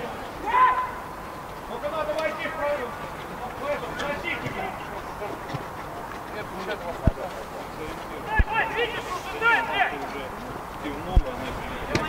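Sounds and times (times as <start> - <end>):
men calling out: 0.0 - 7.0, 7.8 - 12.0.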